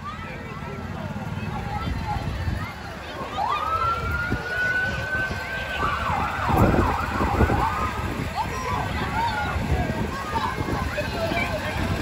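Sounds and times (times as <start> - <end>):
police siren yelping: 3.2 - 9.4.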